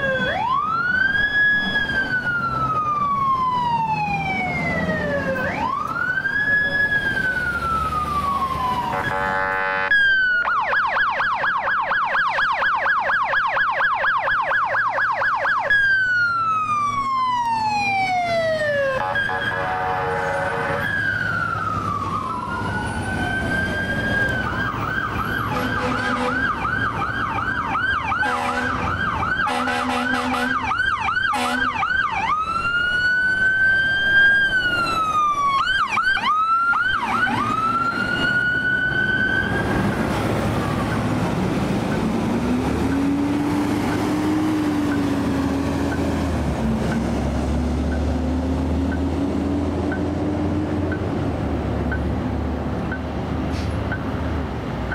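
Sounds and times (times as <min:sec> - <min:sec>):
electronic siren yelping and wailing: 0:00.0 - 0:46.2
short horn blasts: 0:08.9 - 0:09.9, 0:19.0 - 0:20.8, 0:28.2 - 0:28.8, 0:29.5 - 0:30.6, 0:31.4 - 0:31.7.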